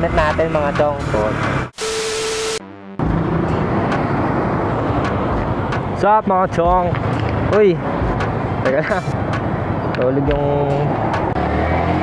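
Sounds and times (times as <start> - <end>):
steady beep: 1.8 - 3.6
wind rush: 3.1 - 6.0.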